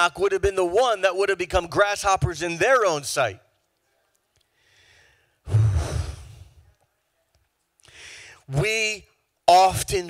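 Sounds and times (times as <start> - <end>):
man sighing into a microphone: 4.6 - 6.6.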